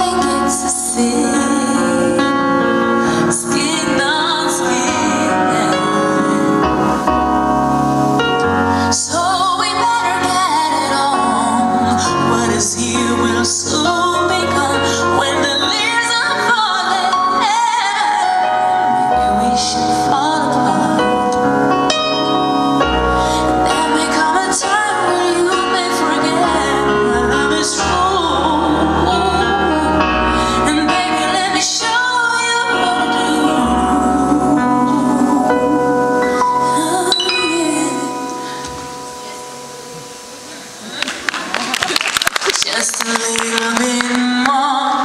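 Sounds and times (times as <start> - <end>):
woman singing: 0.0 - 7.3, 8.3 - 40.1, 42.5 - 45.0
electric keyboard chords: 0.0 - 41.6
woman singing long note: 23.7 - 40.2
audience applause and cheering: 40.8 - 44.7.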